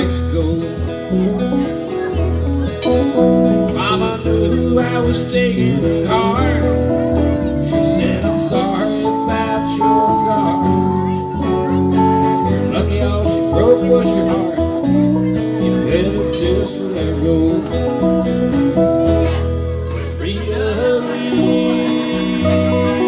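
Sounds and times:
country band with guitar lead: 0.0s - 23.0s.

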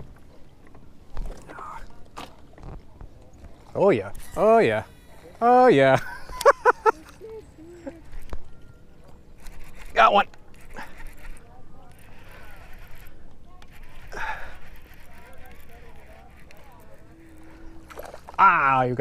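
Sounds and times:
faint wavering sounds: 6.8s - 19.0s.

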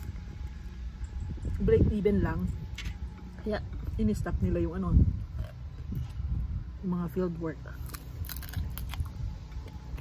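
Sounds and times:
wind buffeting microphone: 0.0s - 10.0s
woman chewing food: 7.8s - 10.0s.

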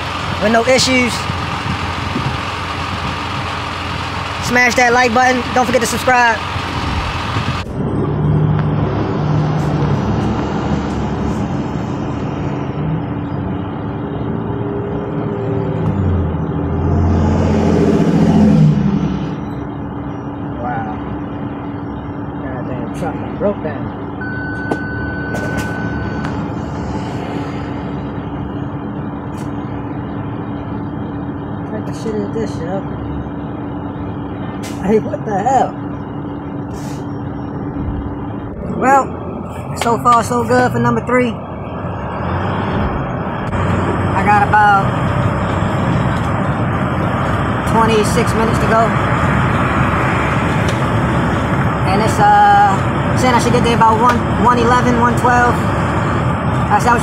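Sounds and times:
road noise: 0.0s - 57.0s
truck diesel engine running: 0.0s - 57.0s
steady electronic beep: 24.2s - 30.7s
air brake hiss: 36.7s - 37.1s.

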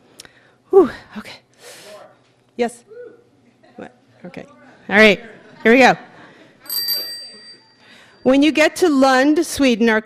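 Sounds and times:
bicycle bell ringing: 6.6s - 8.7s.

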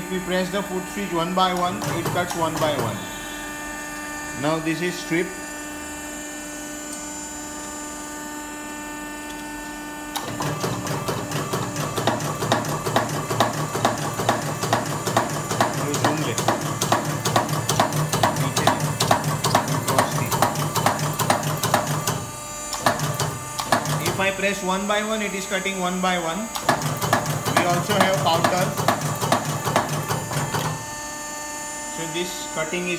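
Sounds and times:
die cutting press humming: 0.0s - 32.9s
press punching metal strip: 1.6s - 3.0s, 10.1s - 24.3s, 26.5s - 30.8s.

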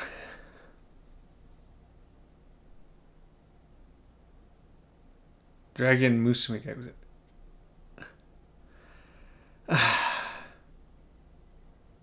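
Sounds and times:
man exhaling loudly: 9.6s - 10.7s.

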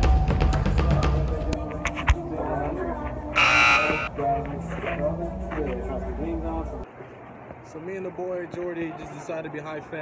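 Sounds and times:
harsh buzzer: 3.4s - 4.1s.

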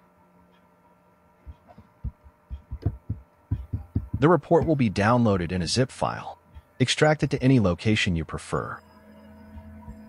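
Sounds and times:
faint steady hum: 0.0s - 10.0s
soft low thumps: 1.4s - 5.2s.

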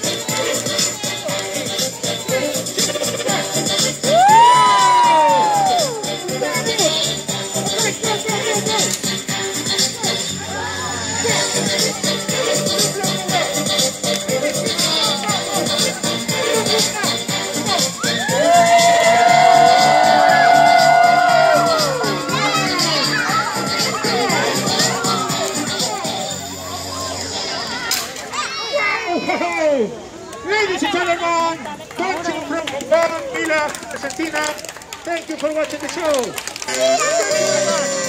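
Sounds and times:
children shouting and cheering: 0.0s - 13.6s, 14.4s - 30.5s, 36.5s - 38.0s
background music with steady beat: 0.0s - 26.7s
long held shout: 4.1s - 6.0s, 18.0s - 22.6s
children calling out woooo: 4.1s - 6.1s, 18.0s - 24.3s.

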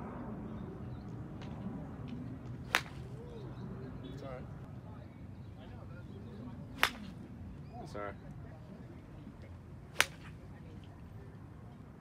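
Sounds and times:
golf club striking ball: 2.7s - 3.1s, 10.0s - 10.3s.

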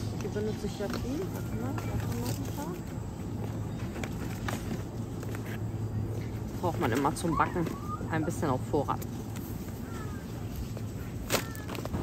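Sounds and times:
supermarket hum: 0.0s - 12.0s.

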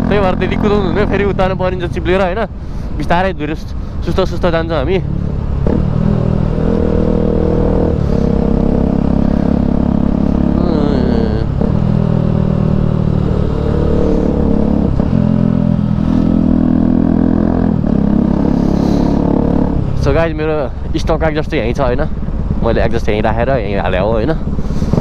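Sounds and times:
motorcycle engine riding: 0.0s - 3.0s, 3.8s - 25.0s.

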